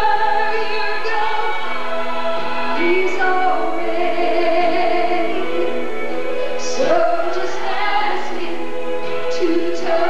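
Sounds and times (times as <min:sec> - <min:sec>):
woman singing gospel song: 0:00.0 - 0:01.9, 0:02.8 - 0:05.7, 0:06.5 - 0:08.6, 0:09.3 - 0:10.0
musical accompaniment: 0:00.0 - 0:10.0.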